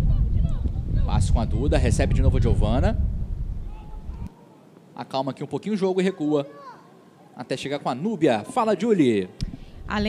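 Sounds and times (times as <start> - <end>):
wind rumble on microphone: 0.0 - 4.3, 9.4 - 10.0.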